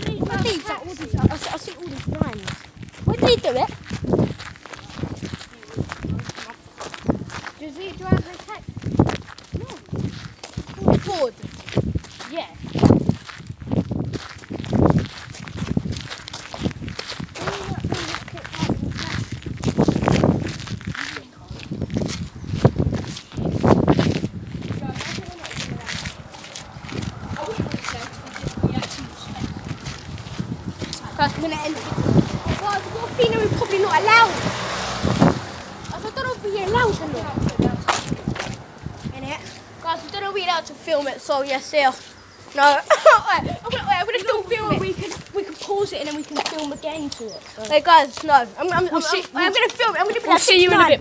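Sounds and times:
voices: 0.0 - 13.2, 16.4 - 51.0
footsteps on dirt path: 0.0 - 51.0
microphone rubbing against clothing: 12.6 - 32.7.

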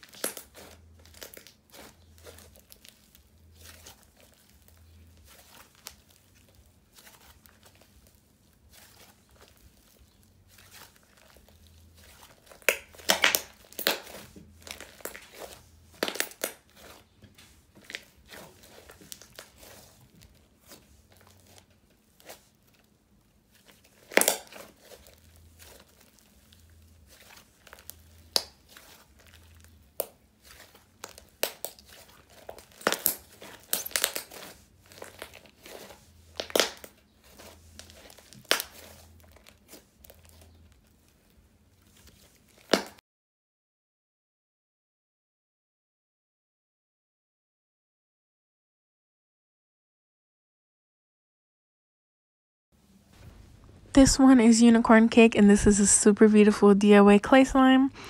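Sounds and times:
slime popping and crackling: 0.0 - 22.9, 23.5 - 43.0.

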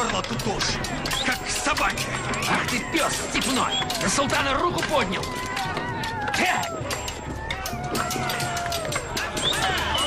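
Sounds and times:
voices calling: 0.0 - 10.0.

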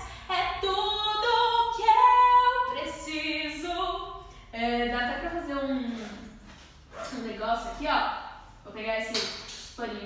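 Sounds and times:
woman speaking: 4.6 - 6.4, 7.0 - 10.0.

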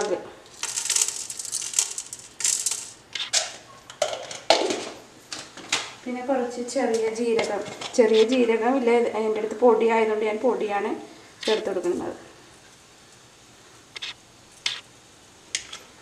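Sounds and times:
woman talking: 0.0 - 0.3, 6.0 - 12.3
spices scraping: 0.5 - 3.8, 7.8 - 8.4, 11.4 - 12.1, 13.9 - 14.9.

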